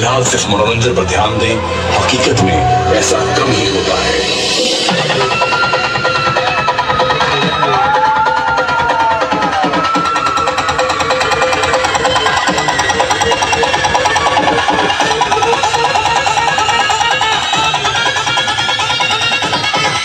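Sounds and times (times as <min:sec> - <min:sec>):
dance music from loudspeakers: 0:00.0 - 0:20.0.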